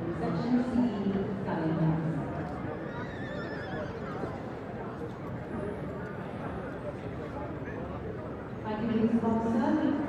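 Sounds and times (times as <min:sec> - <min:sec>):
murmur of voices: 0:00.0 - 0:10.0
pony whinnying: 0:02.9 - 0:04.1.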